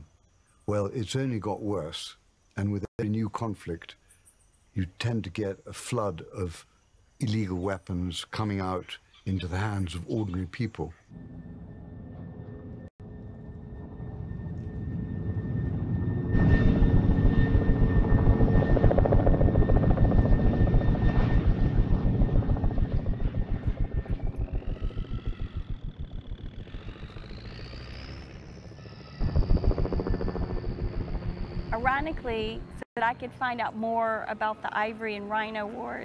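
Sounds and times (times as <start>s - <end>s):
helicopter rotor beating: 11.2s - 32.8s
high whine: 11.2s - 32.8s.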